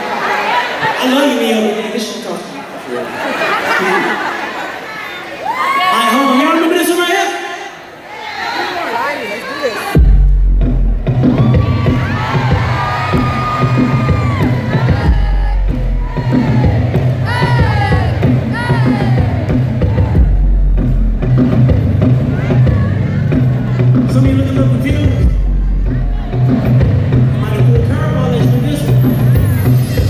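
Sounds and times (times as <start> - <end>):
crowd cheering and screaming: 3.4 - 7.1, 10.8 - 30.0
bass-heavy music over speakers: 9.9 - 30.0.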